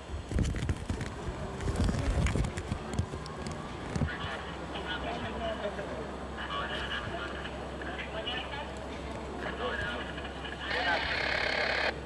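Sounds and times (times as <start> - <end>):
low hum of street noise: 0.0 - 12.0.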